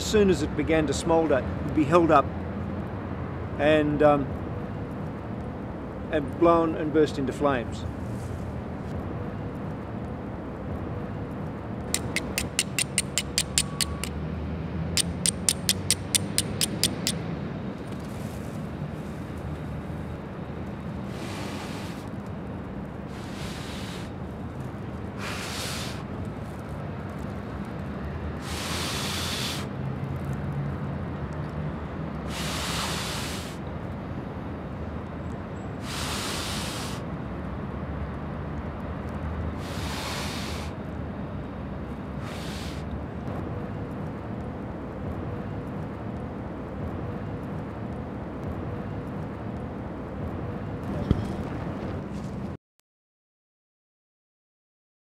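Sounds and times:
flint striking steel: 0:12.0 - 0:14.1, 0:15.0 - 0:17.2.

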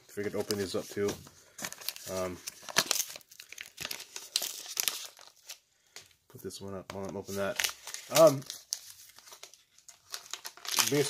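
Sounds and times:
paper envelope crinkling: 0:00.1 - 0:05.6, 0:06.9 - 0:11.0.

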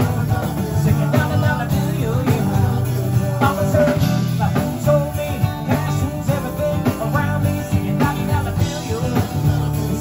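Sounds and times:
drums: 0:00.0 - 0:10.0
electric bass: 0:00.0 - 0:10.0
strummed acoustic guitars: 0:00.0 - 0:10.0.

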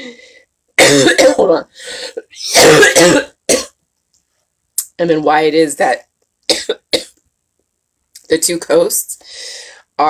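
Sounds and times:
woman coughing: 0:00.8 - 0:01.6, 0:02.4 - 0:03.7, 0:06.5 - 0:07.1.

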